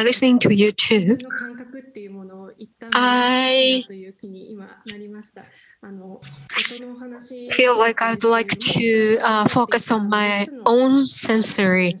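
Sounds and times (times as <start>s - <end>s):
woman speaking hesitantly: 0.0s - 2.1s
mouth clicks: 1.2s - 1.7s.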